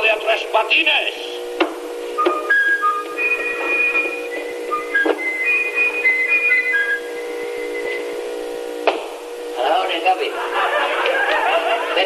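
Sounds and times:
steady hum: 0.0s - 12.0s
whistled tune: 2.2s - 8.1s
sharp knocks: 8.8s - 9.2s.

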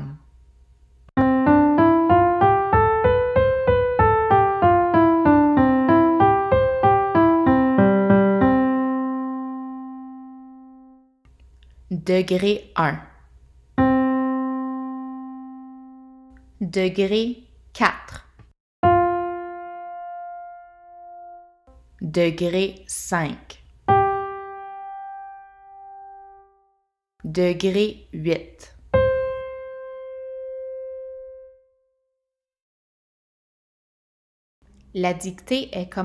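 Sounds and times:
piano note: 1.2s - 11.1s, 13.8s - 16.4s, 18.8s - 21.8s, 23.9s - 26.7s, 28.9s - 31.8s.

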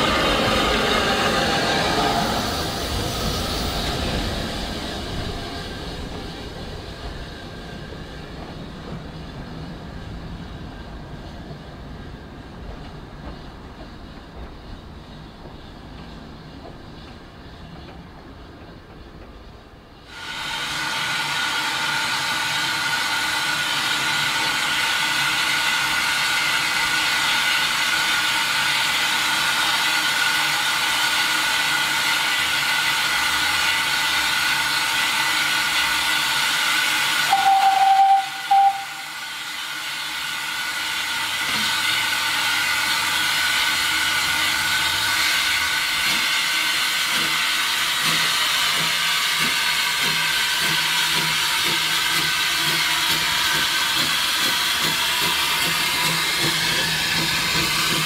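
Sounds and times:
steam hissing: 0.0s - 19.1s, 20.0s - 58.0s
steam engine exhaust beats: 11.4s - 58.0s
steam whistle blast: 37.2s - 39.4s.

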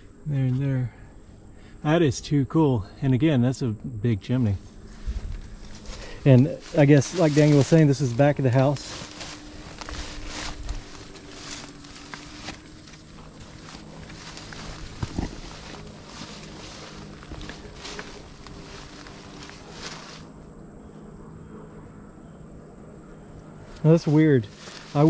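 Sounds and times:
faint low hum: 0.0s - 25.0s
footsteps rustling through vines: 4.6s - 20.4s, 23.6s - 25.0s.

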